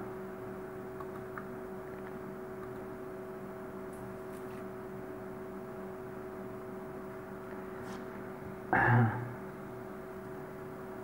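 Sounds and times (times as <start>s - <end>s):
electrical hum and hiss: 0.0s - 11.0s.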